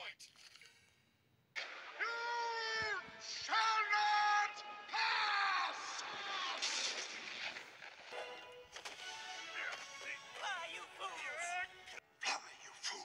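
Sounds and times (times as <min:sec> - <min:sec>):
man shouting: 0:01.9 - 0:06.7
film music: 0:07.8 - 0:12.9.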